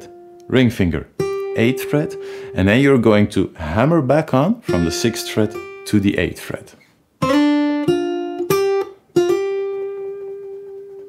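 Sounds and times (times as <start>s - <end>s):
acoustic guitar blues lick: 1.1s - 3.0s, 4.6s - 6.4s, 7.2s - 11.0s.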